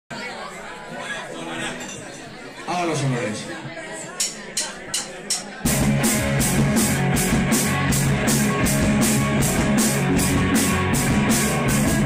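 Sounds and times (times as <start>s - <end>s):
crowd chatter: 0.1s - 12.0s.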